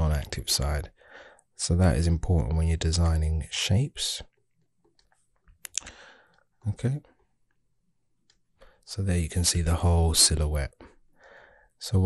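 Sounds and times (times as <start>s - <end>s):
person speaking: 0.0s - 4.4s, 6.6s - 7.3s, 8.6s - 11.0s
faint clicks: 4.3s - 6.5s.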